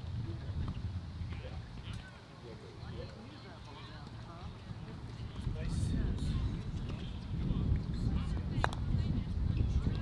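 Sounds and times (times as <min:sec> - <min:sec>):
wind on microphone: 0:00.0 - 0:02.2, 0:02.8 - 0:10.0.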